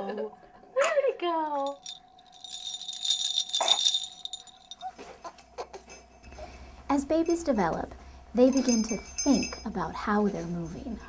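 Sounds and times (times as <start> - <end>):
jingle bells shaken: 1.6 - 4.9, 7.2 - 7.6, 8.4 - 9.8.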